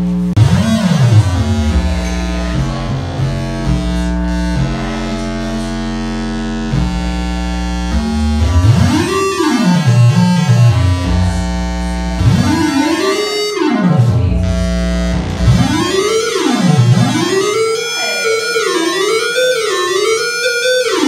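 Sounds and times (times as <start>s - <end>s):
theremin tones swooping: 0.4s - 5.5s, 7.9s - 20.1s.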